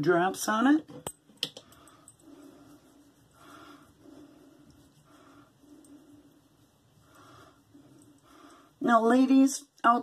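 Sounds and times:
hands rubbing oil into face: 0:02.3 - 0:07.7.

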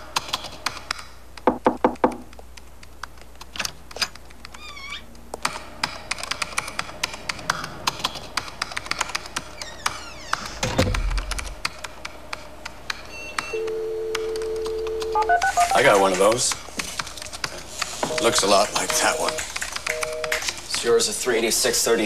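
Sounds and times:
rapid keyboard typing: 0:00.0 - 0:01.1, 0:05.4 - 0:22.0
falling electronic tones: 0:15.0 - 0:16.0
high electronic beeps: 0:15.1 - 0:15.9, 0:18.1 - 0:20.4
warbling electronic chirp: 0:15.2 - 0:15.9.

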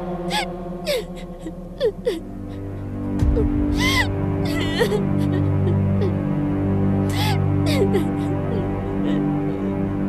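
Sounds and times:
dark music score: 0:00.0 - 0:10.0
woman sobbing: 0:00.2 - 0:06.3, 0:07.1 - 0:10.0.

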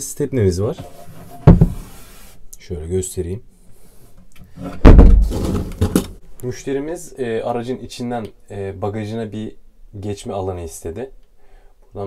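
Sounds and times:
heavy thump of board panel: 0:01.5 - 0:01.8, 0:04.8 - 0:06.1.

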